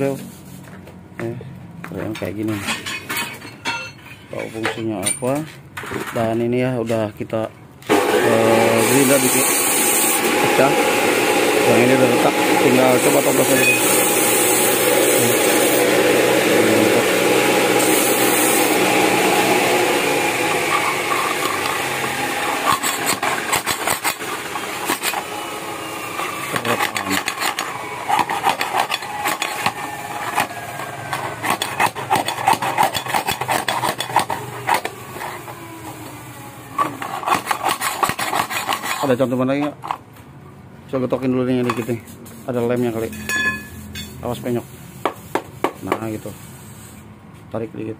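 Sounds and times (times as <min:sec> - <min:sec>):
metal scraping and clicking: 0:26.5 - 0:35.4.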